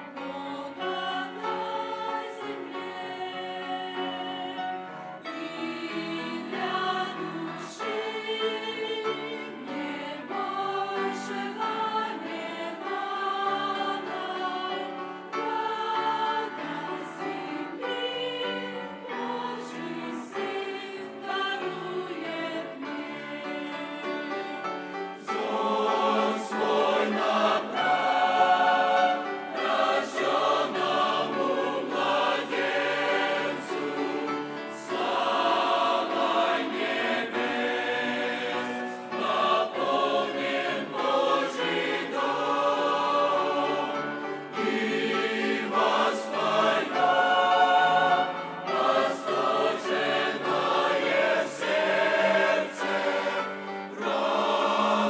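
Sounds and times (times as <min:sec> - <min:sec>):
mixed choir singing a hymn: 0:00.0 - 0:55.0.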